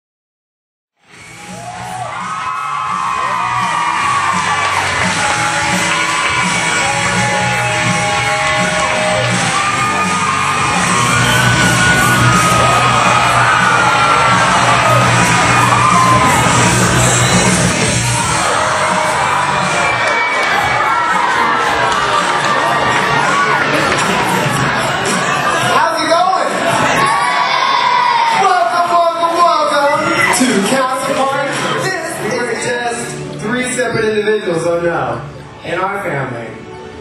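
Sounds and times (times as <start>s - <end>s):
audience yelling and cheering: 1.0s - 34.2s
music with steady low beat: 3.0s - 20.0s.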